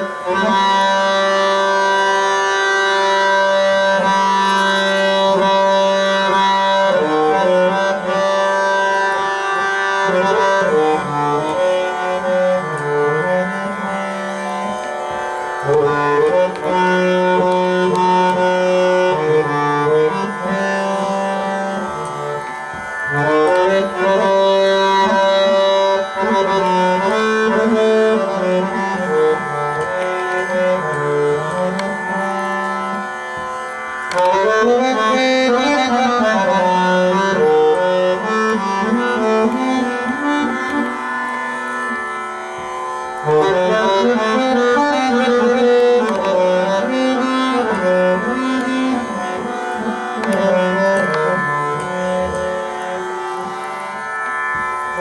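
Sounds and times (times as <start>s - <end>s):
harmonium playing slow notes: 0.0s - 55.0s.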